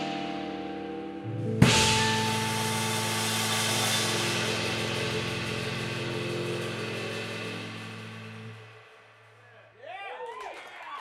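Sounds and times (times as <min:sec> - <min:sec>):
low held chord: 0:00.0 - 0:08.9
cymbal wash: 0:00.0 - 0:09.5.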